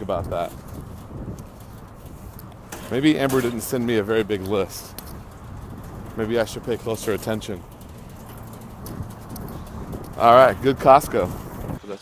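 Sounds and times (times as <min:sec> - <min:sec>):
outdoor background noise: 0:00.0 - 0:12.0
faint ticks and taps: 0:04.4 - 0:06.2, 0:07.2 - 0:10.2.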